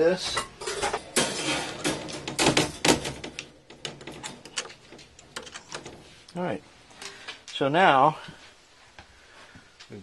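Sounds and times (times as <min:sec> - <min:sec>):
metal wire cage rattling and clanking: 0:00.5 - 0:06.2.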